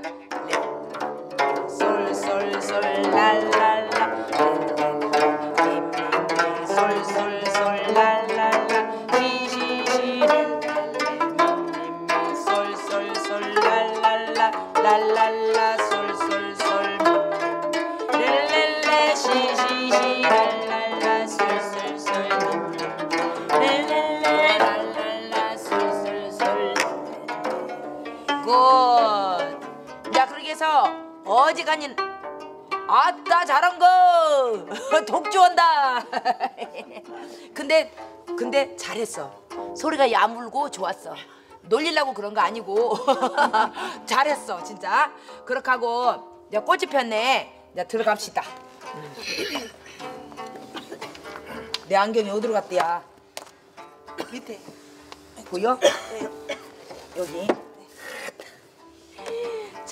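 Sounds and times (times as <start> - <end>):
plucked zithers: 0.0 - 59.9.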